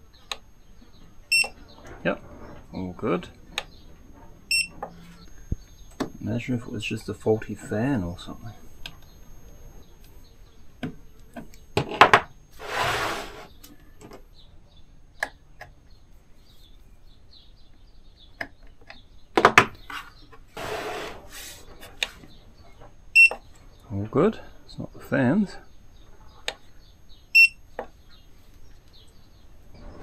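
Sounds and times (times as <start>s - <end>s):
high electronic beep: 1.3s - 1.5s, 4.5s - 4.7s, 27.4s - 27.6s.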